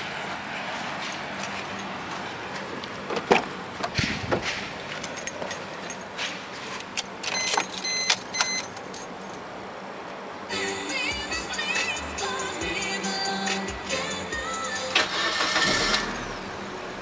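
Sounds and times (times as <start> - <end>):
car warning chime beeps: 7.3 - 8.7.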